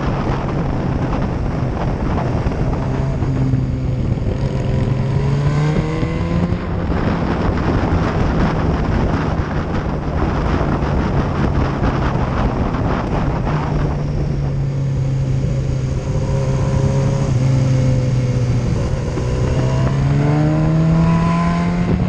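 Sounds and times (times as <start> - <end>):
motorcycle engine running: 0.0 - 22.0
wind rush on microphone: 0.0 - 22.0.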